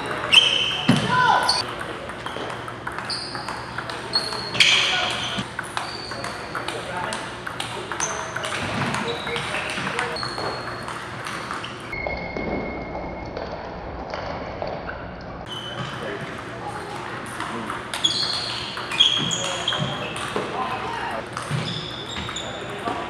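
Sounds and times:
table tennis balls clicking: 0:01.6 - 0:11.9
voices in hall: 0:15.5 - 0:23.0.

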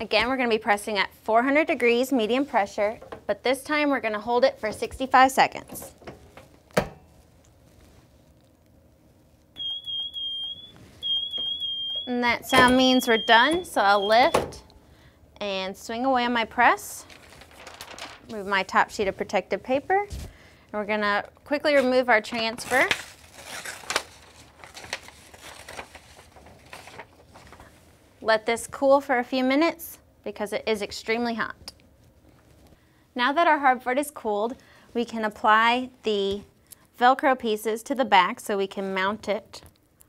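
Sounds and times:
timer alarm beeping: 0:09.6 - 0:14.4
paper crinkling: 0:17.0 - 0:18.8, 0:22.3 - 0:27.8.

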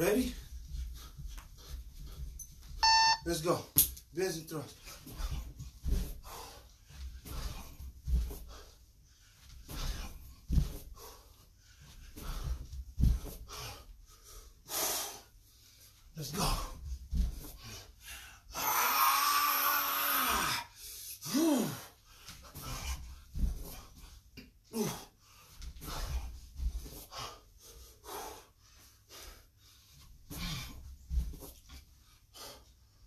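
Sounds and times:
man breathing hard: 0:27.0 - 0:30.8.

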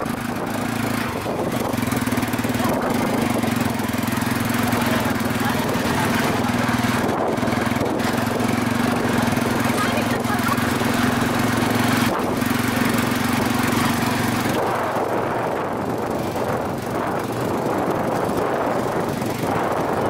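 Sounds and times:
motorcycle tricycle engine running: 0:00.0 - 0:20.0.

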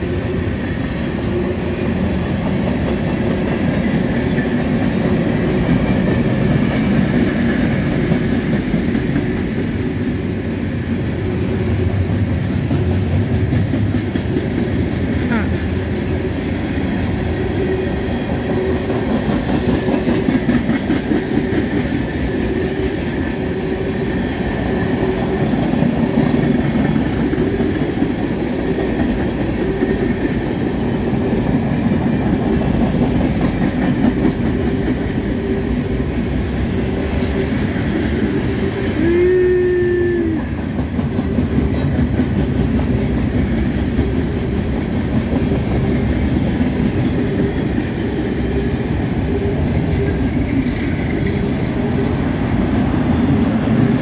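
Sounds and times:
wheels clacking on rails: 0:00.0 - 0:54.0.

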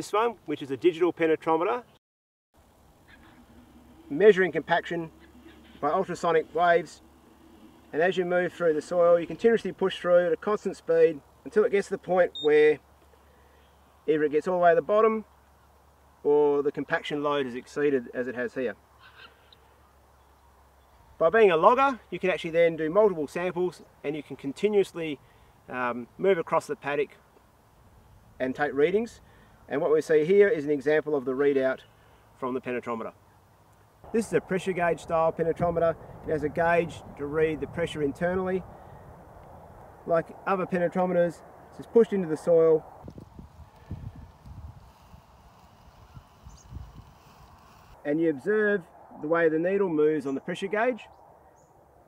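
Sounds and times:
steady low hum: 0:02.6 - 0:09.9.

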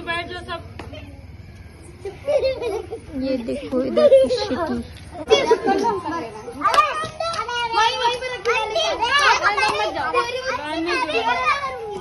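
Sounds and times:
children chattering and calling: 0:00.0 - 0:12.0.

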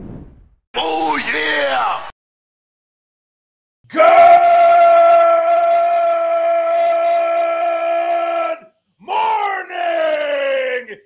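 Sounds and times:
man yelling: 0:03.9 - 0:11.0.

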